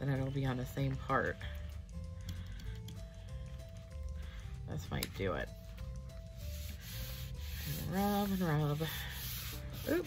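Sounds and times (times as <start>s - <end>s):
palm rubbing paper: 6.4s - 10.0s.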